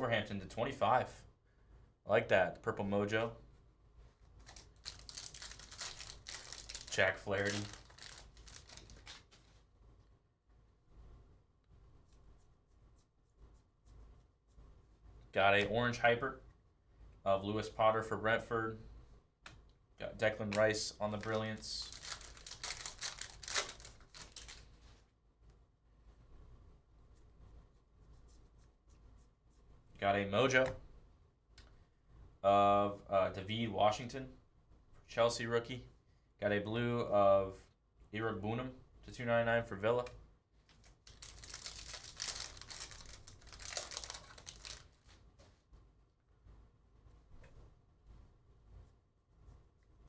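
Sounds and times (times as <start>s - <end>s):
handling of cards: 4.2s - 9.7s, 20.2s - 25.0s, 40.0s - 45.6s
foil wrapper tearing and crinkling: 4.4s - 9.3s, 21.2s - 24.6s, 40.8s - 45.1s.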